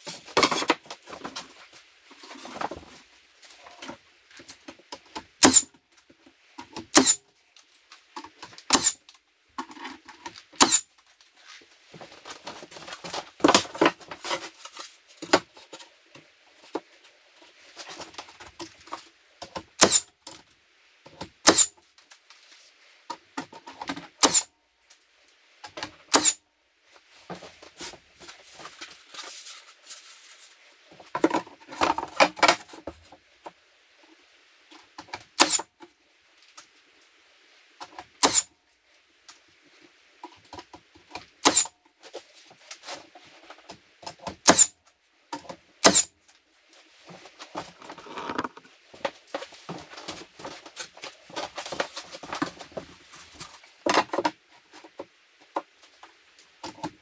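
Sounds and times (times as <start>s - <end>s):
wooden boards scraping and knocking: 0.0s - 7.2s, 11.4s - 20.4s, 27.2s - 33.6s, 46.8s - 57.0s
nail gun firing: 5.4s - 5.7s, 6.9s - 7.2s, 8.7s - 9.0s, 10.6s - 10.8s, 19.8s - 20.1s, 21.4s - 21.7s, 24.2s - 24.5s, 26.1s - 26.4s, 35.4s - 35.7s, 38.2s - 38.5s, 41.4s - 41.7s, 44.4s - 44.7s, 45.8s - 46.1s.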